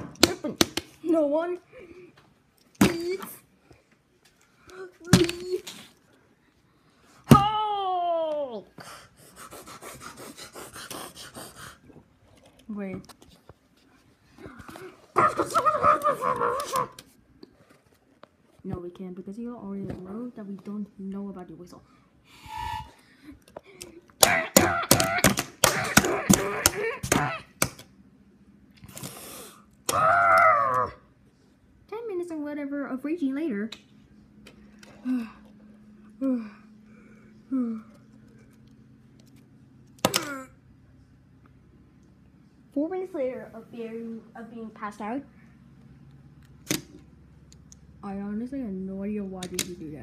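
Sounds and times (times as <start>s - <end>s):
child making sound-effect cries: 7.4s - 8.7s, 15.2s - 17.0s, 24.2s - 27.5s, 29.9s - 31.0s
sharp plastic click: 46.5s - 47.0s.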